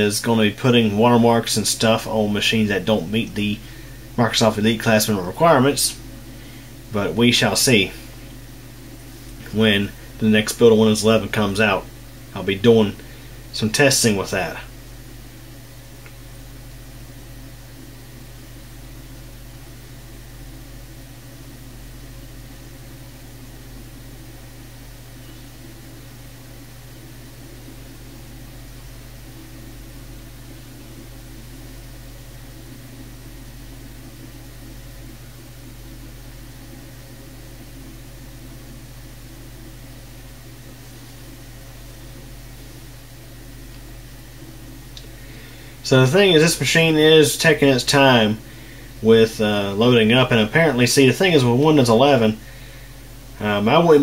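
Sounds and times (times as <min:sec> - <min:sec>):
computer fans humming: 0:00.0 - 0:54.0
hard disk drive whirring: 0:00.0 - 0:54.0.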